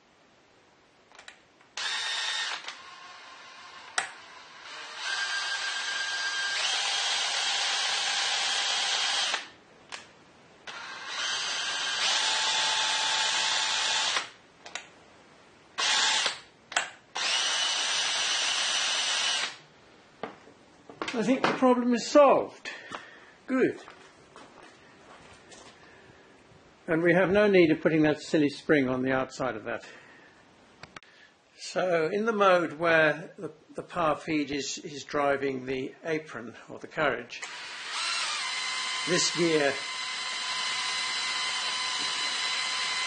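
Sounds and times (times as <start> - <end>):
cordless drill spinning gears: 1.8 - 9.5, 10.7 - 14.3, 15.8 - 16.4, 17.2 - 19.6, 37.4 - 43.0.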